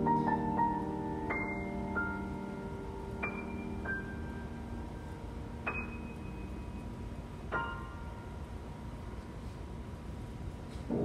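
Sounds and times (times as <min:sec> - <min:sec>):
soft grand piano notes: 0:00.0 - 0:11.0.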